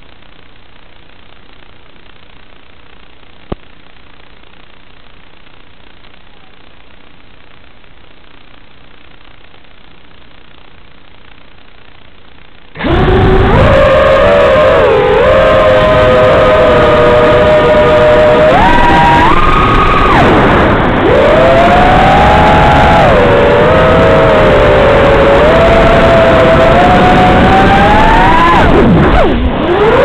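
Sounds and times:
drone motors whining: 0:12.8 - 0:30.0.

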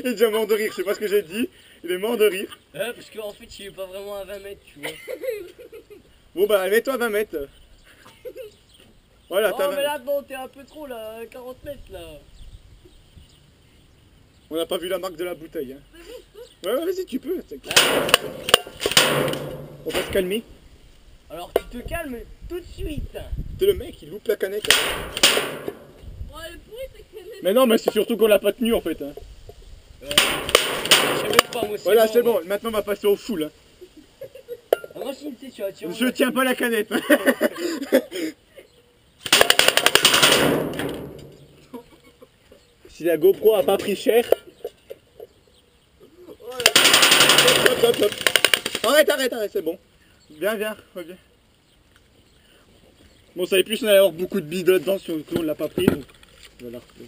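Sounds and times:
pellets striking can: 0:17.7 - 0:20.4, 0:24.6 - 0:26.0, 0:30.1 - 0:31.8, 0:39.3 - 0:41.6, 0:46.6 - 0:48.8
airsoft rifle rapid clicks: 0:39.2 - 0:41.2, 0:46.6 - 0:48.9
can rattling clatter: 0:46.6 - 0:48.8.

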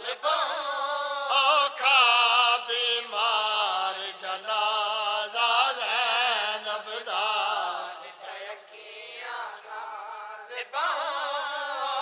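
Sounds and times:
man chanting a lament: 0:00.0 - 0:12.0.

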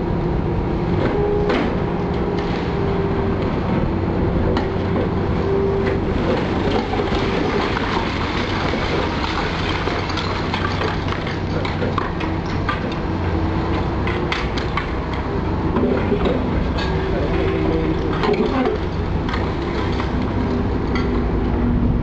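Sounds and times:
excavator engine hum: 0:00.0 - 0:22.0
concrete cracking and clattering: 0:06.3 - 0:13.0.

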